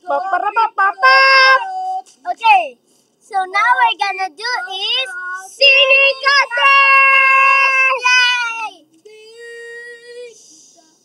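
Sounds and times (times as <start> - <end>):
girl singing: 3.3 - 8.7.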